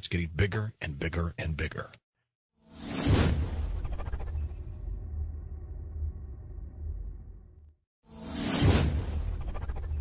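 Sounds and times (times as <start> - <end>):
low rumble: 5.0 - 7.8.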